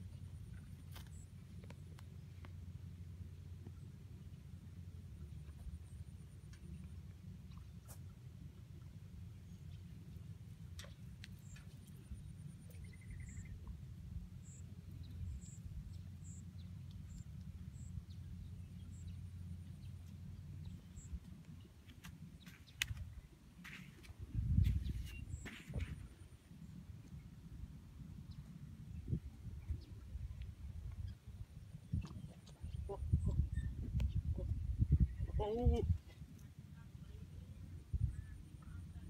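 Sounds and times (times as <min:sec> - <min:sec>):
wind rumble on microphone: 0:20.6 - 0:39.0.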